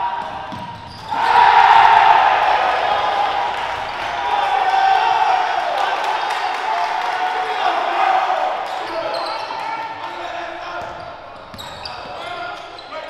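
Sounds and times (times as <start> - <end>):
crowd shouting and cheering: 0.0 - 11.2
basketball bouncing on court: 0.2 - 1.1.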